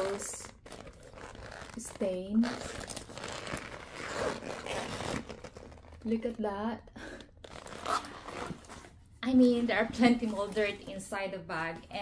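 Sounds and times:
bag rustling and zipper scraping: 0.0s - 6.2s, 7.4s - 9.0s.

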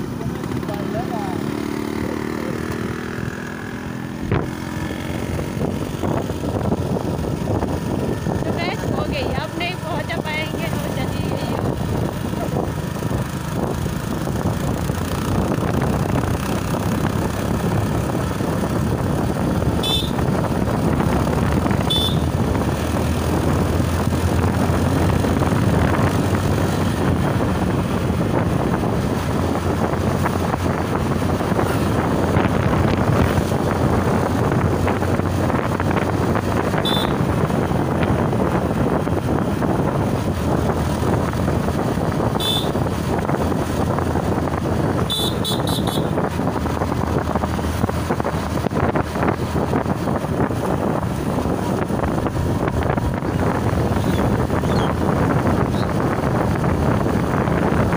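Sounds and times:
motorcycle engine cruising: 0.0s - 57.9s
wind and road noise: 0.0s - 57.9s.

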